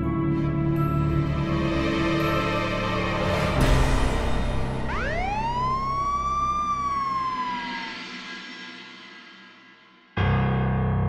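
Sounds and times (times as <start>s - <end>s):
dramatic score music: 0.0s - 9.1s
synthesized tone swooping up: 4.7s - 8.2s.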